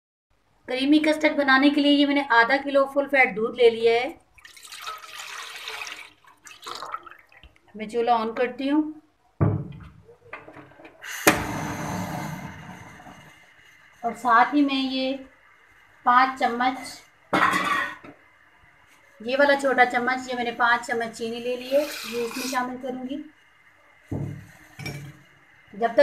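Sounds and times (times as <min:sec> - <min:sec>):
milk pouring into saucepan: 0:04.3 - 0:07.6
person coughing: 0:17.4 - 0:18.0.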